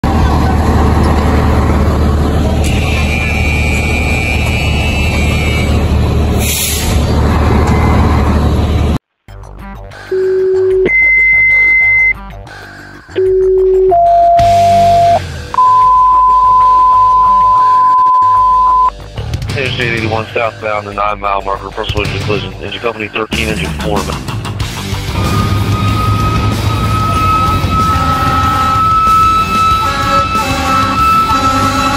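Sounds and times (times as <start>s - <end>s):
loud steady rumble: 0.0s - 9.0s, 19.0s - 31.9s
radio alert tone beeps: 10.1s - 12.2s, 13.2s - 18.9s.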